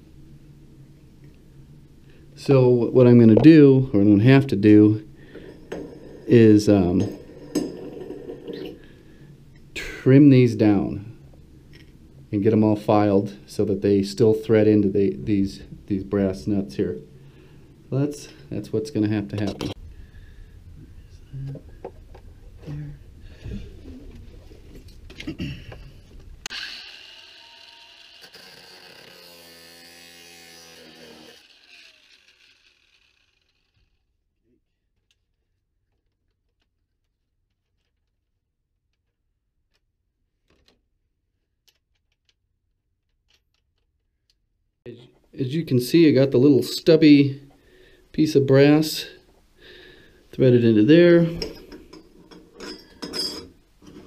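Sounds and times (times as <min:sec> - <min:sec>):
angle grinder cutting metal: 0:26.5 - 0:34.0
small metal part clattering: 0:51.4 - 0:54.0.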